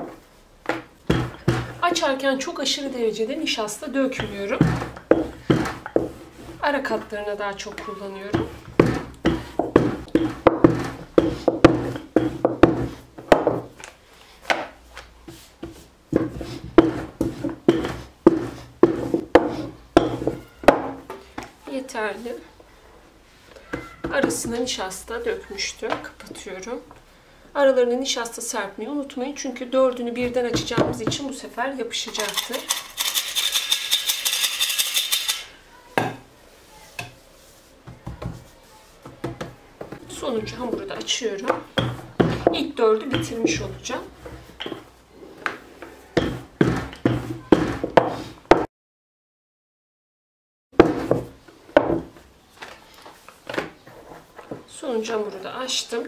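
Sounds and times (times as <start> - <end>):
rolling pin rolling dough: 0.0 - 2.2, 3.9 - 13.8, 14.5 - 21.1, 36.9 - 48.7, 50.8 - 52.2
metal flour sifter rattling: 32.1 - 35.5.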